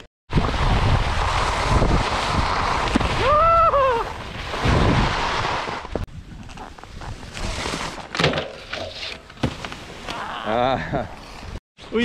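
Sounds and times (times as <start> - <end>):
skis scraping on packed snow: 0.3 - 3.3, 4.0 - 8.1
wind rushing over microphone: 0.3 - 7.5.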